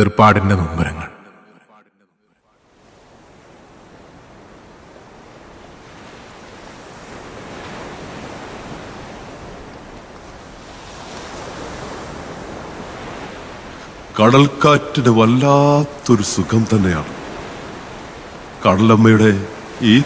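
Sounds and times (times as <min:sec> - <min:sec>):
ocean waves breaking: 0:02.5 - 0:20.0.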